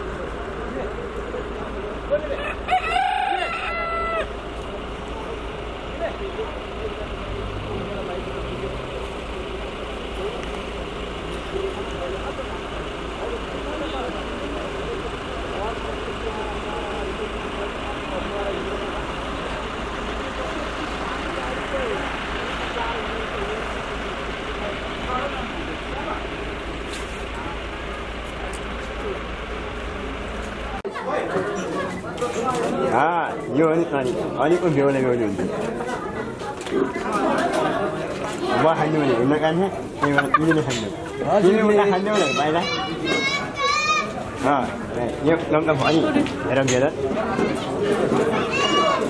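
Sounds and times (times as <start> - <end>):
faint scattered voices: 0.0 - 49.0
rooster crowing: 2.4 - 4.4.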